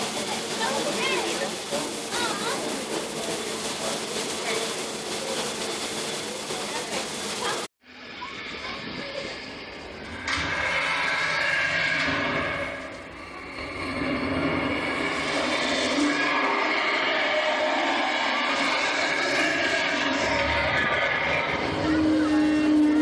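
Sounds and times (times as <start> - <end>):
indistinct voices: 0.0 - 23.0
tram running noise: 0.0 - 23.0.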